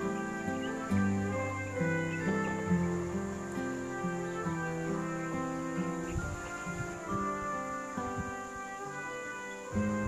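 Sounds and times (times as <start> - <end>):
slow instrumental melody: 0.0 - 10.0.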